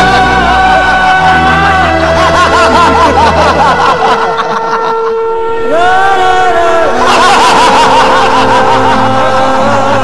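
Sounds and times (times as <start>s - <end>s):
held music drone: 0.0s - 10.0s
men laughing loudly: 0.0s - 10.0s.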